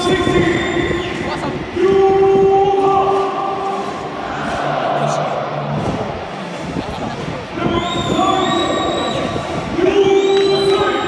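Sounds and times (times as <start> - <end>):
faint crowd noise: 0.0 - 11.0.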